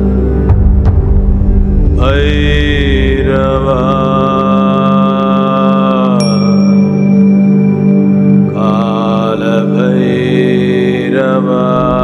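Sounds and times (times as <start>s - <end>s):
steady low drone: 0.0s - 12.0s
voice chanting in held notes: 2.0s - 6.6s, 8.5s - 12.0s.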